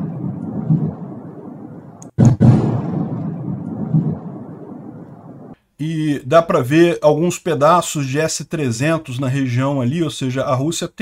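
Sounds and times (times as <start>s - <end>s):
explosion boom rumbling: 0.0s - 5.6s.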